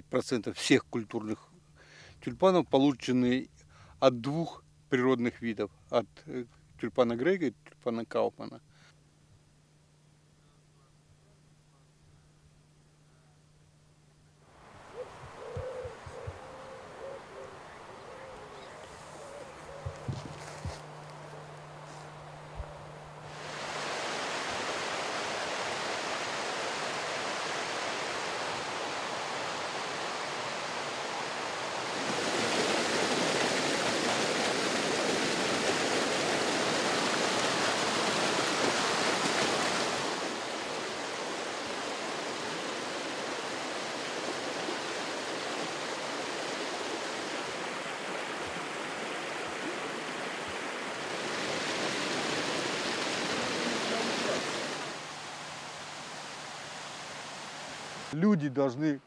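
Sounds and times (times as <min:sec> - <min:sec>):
river rushing over rocks: 0:23.3 - 0:58.2.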